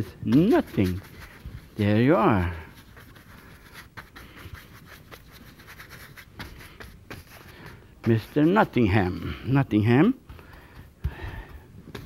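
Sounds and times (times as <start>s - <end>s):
paintbrush scratching on canvas: 0.0s - 10.8s.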